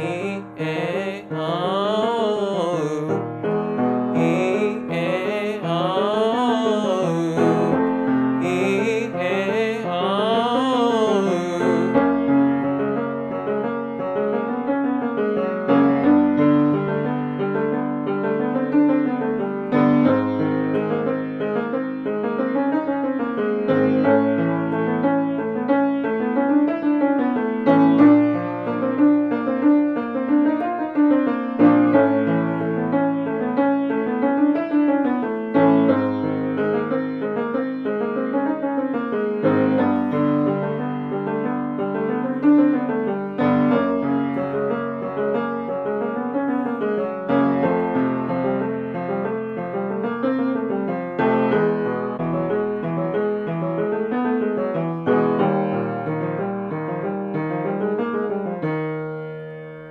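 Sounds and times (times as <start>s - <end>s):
grand piano playing: 0.0s - 59.9s.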